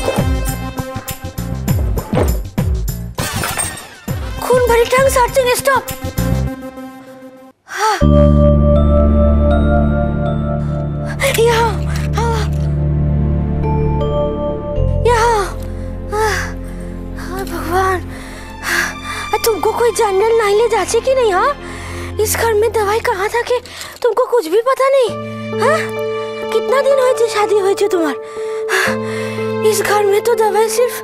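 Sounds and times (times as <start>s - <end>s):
background music: 0.0s - 31.0s
dramatic background score: 4.2s - 24.0s, 25.1s - 31.0s.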